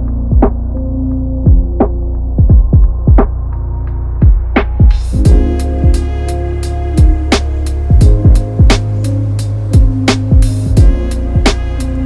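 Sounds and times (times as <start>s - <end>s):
muffled lo-fi hip-hop beat: 0.0s - 12.0s.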